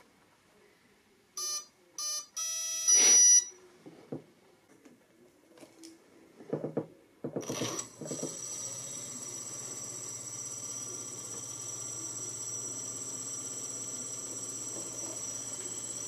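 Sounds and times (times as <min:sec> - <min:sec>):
electric motor propeller whine: 0:07.5 - 0:16.0.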